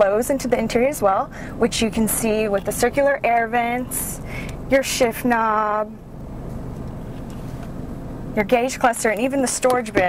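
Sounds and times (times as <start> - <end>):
low rumble inside car cabin: 0.0 - 10.0.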